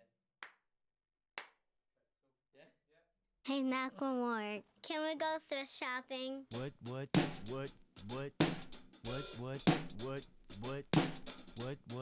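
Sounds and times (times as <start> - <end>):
hand claps: 0.4 - 0.6, 1.4 - 1.6.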